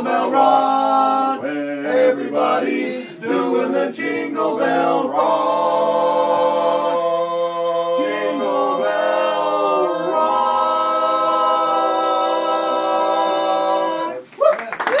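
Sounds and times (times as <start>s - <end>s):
male quartet singing a cappella: 0.0s - 14.3s
crowd cheering and clapping: 14.3s - 15.0s.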